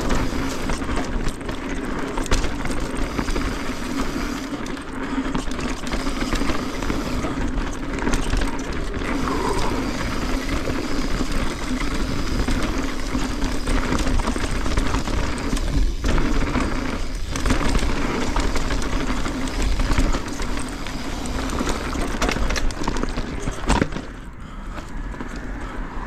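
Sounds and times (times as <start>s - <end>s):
bike rattling and clattering: 0.0s - 26.0s
bike tyres on dirt trail: 0.0s - 26.0s.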